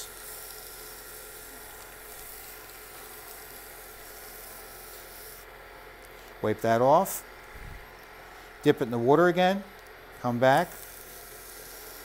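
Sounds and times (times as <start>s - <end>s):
lathe running hum: 0.0s - 12.0s.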